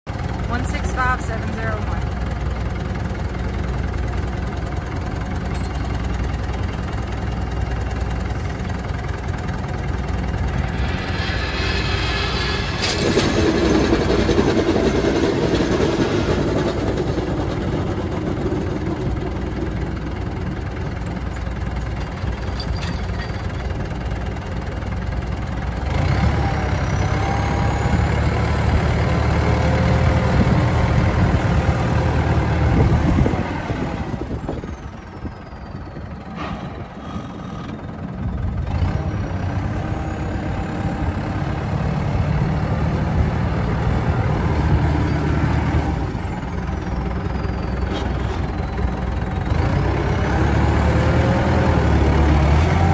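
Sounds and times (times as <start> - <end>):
tractor diesel engine running: 0.1 - 52.9
thin rising whine: 9.1 - 15.8.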